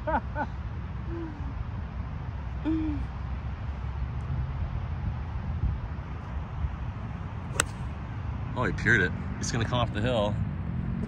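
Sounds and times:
golf club striking ball: 7.5 - 8.0.

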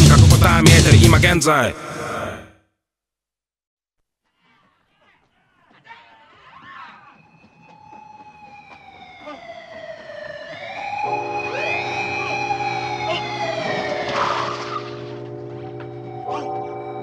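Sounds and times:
sirens wailing: 6.7 - 17.0
low droning music chord: 11.1 - 14.0.

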